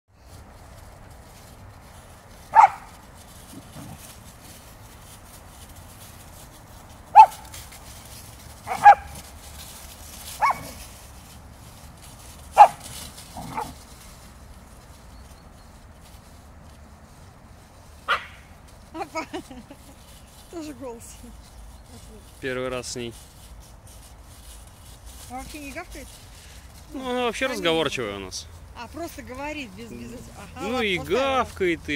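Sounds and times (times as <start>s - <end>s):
dog barking: 2.5s - 2.9s, 7.1s - 7.4s, 8.7s - 9.1s, 10.4s - 10.8s, 12.6s - 12.8s, 13.4s - 13.8s, 18.1s - 18.4s.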